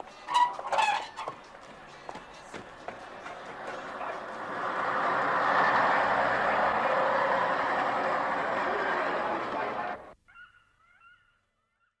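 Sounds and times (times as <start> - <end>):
street noise: 0.0 - 10.2.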